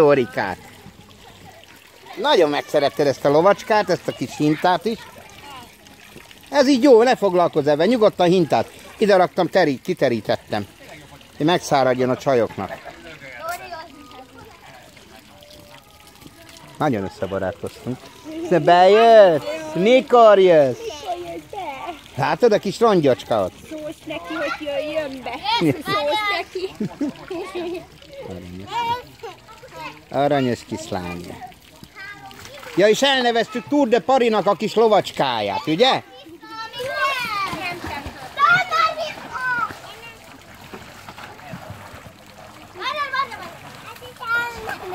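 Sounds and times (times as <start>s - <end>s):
children calling at play: 0.0s - 9.4s, 10.6s - 44.9s
hose water pouring into tub: 0.0s - 35.8s, 36.5s - 44.9s
faint voices: 10.4s - 22.2s.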